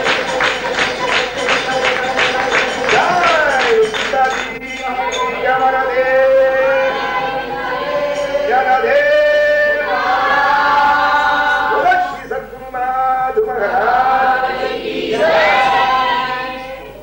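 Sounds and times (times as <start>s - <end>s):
group of voices singing: 0.0s - 17.0s.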